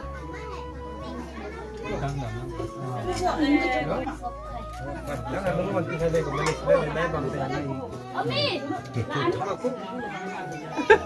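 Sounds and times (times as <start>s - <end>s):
adults and children chattering: 0.0s - 11.0s.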